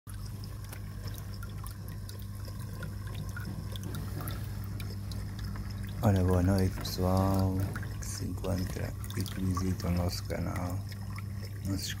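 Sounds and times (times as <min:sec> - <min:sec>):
constant low hum: 0:00.1 - 0:12.0
water trickling and dripping: 0:00.1 - 0:12.0.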